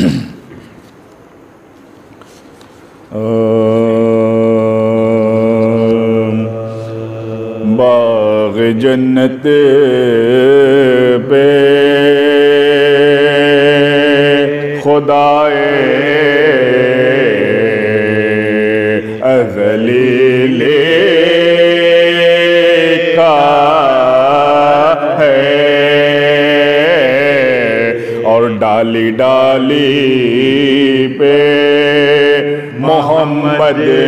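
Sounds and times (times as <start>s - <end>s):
men's voices melodic recitation: 3.1s - 34.0s.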